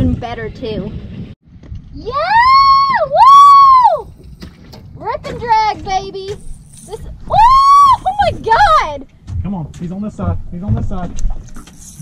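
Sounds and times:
woman yelling celebratory: 0:02.0 - 0:04.0, 0:07.3 - 0:08.9.

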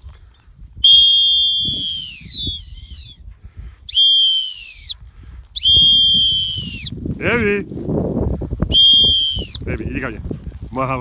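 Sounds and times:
dog-training whistle blasts: 0:00.8 - 0:03.2, 0:03.9 - 0:05.0, 0:05.6 - 0:06.9, 0:08.7 - 0:09.6.

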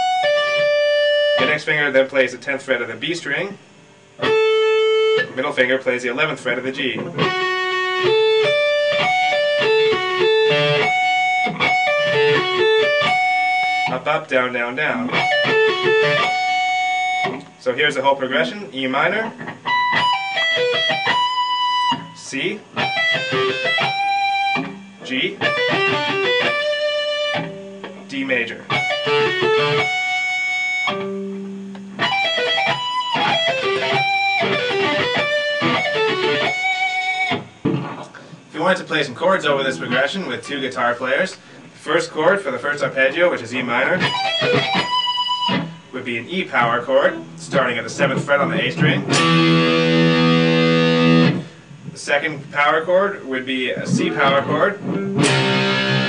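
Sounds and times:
electric guitar arpeggio: 0:00.0 - 0:01.6, 0:04.1 - 0:05.4, 0:07.0 - 0:14.1, 0:15.0 - 0:17.6, 0:19.2 - 0:38.4, 0:44.0 - 0:45.9, 0:46.6 - 0:51.9, 0:53.8 - 0:56.0.

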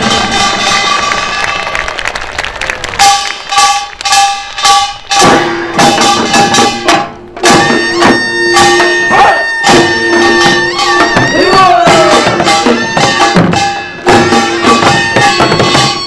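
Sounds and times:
ringing metal percussion: 0:00.0 - 0:01.7, 0:03.0 - 0:16.0
drums: 0:00.0 - 0:16.0
held wind instrument tone: 0:03.0 - 0:16.0.

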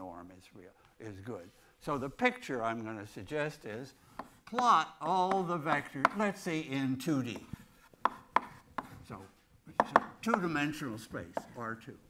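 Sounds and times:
chalk tapping on blackboard: 0:04.1 - 0:06.4, 0:07.3 - 0:09.0, 0:09.8 - 0:10.6, 0:11.3 - 0:11.6.

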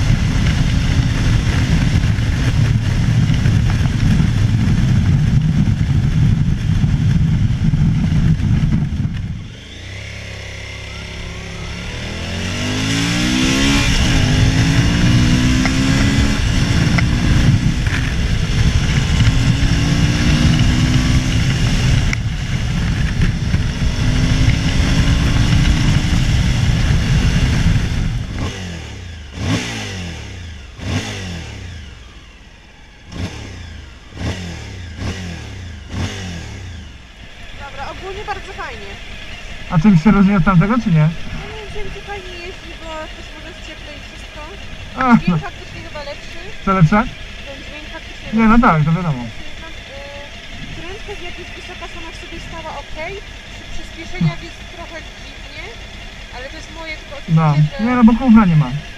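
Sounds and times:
wind noise: 0:00.0 - 0:28.8
motorcycle engine accelerating: 0:00.0 - 0:58.9
engine throttle bursts: 0:07.6 - 0:58.9.

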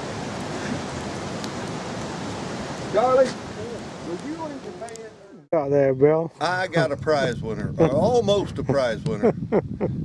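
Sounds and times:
steady rushing outdoor noise: 0:00.0 - 0:05.3.

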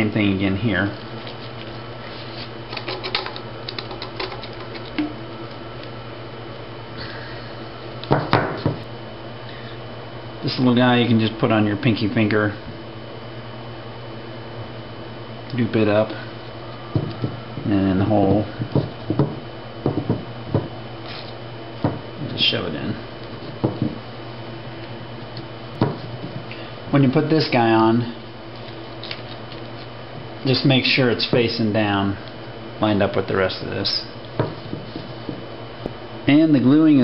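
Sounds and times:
pipe fittings knocking on tabletop: 0:18.7 - 0:20.7.

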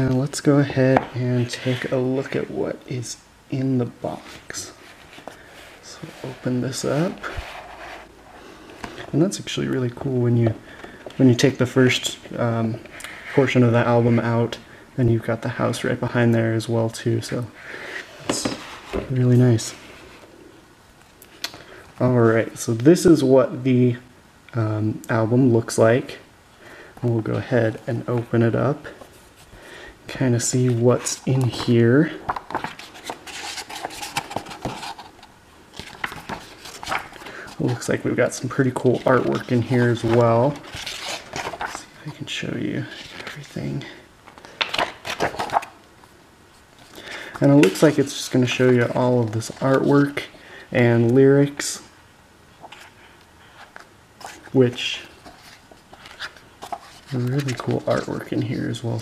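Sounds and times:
paper pages rustling: 0:30.4 - 0:42.2, 0:42.8 - 0:43.6, 0:44.3 - 0:50.3, 0:52.6 - 0:59.0.

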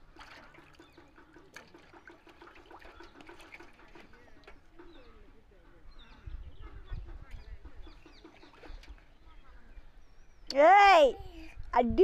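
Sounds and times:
water splashing in plastic tub: 0:00.0 - 0:05.0, 0:07.8 - 0:09.2
birds calling: 0:00.4 - 0:11.1.

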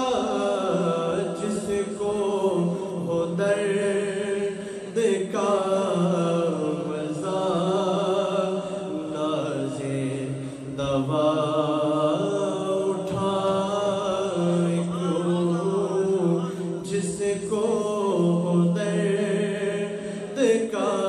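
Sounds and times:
man singing unaccompanied: 0:00.0 - 0:21.0.

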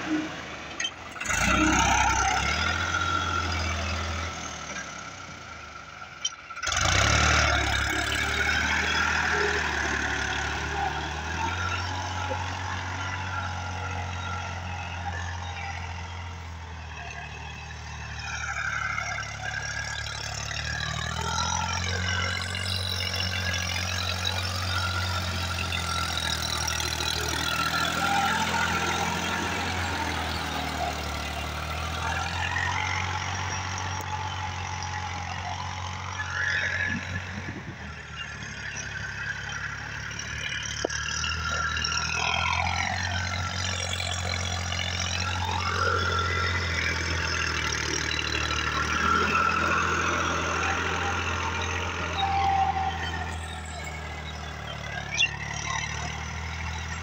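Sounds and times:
tractor diesel engine under load: 0:00.0 - 0:57.0.

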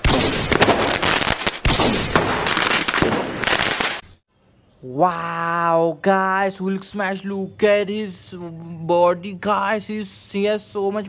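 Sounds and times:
crackling bangs and crashes: 0:00.0 - 0:04.2.

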